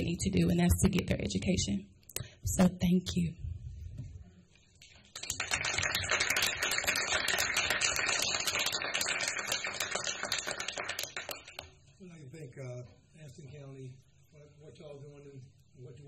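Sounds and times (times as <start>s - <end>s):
audience applauding: 5.1s - 11.7s.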